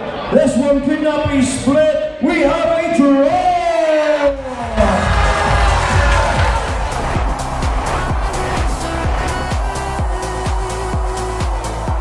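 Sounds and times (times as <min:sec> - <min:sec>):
crowd cheering: 0:03.2 - 0:12.0
loud music with steady beat: 0:04.4 - 0:12.0.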